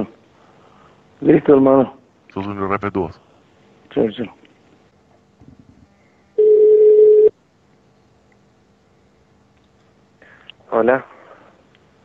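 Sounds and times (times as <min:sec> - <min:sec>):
telephone ringback tone: 0:06.4 - 0:07.3.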